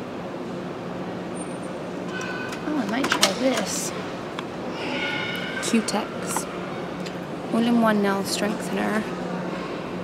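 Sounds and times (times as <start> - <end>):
shop interior hum: 0.0 - 10.0.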